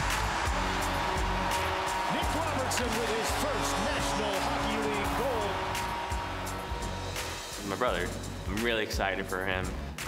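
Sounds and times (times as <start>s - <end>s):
background music: 0.0s - 10.0s
excited commentator speaking: 2.1s - 5.6s.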